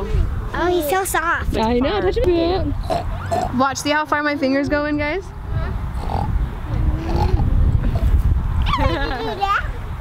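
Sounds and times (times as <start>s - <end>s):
low rumbling on microphone: 4.6s - 10.0s.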